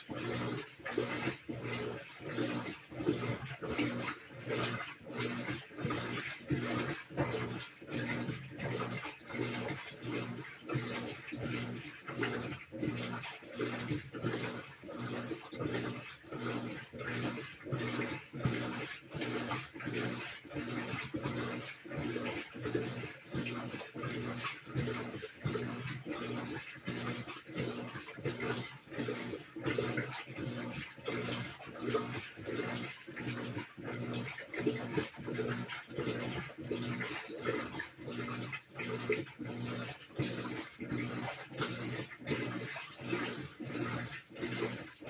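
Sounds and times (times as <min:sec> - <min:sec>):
washer motor humming: 0:00.0 - 0:45.0
water sloshing: 0:00.0 - 0:45.0.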